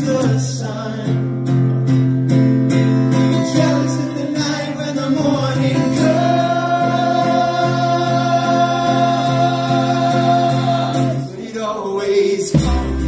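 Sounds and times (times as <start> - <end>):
acoustic guitar chords: 0.0 - 13.0.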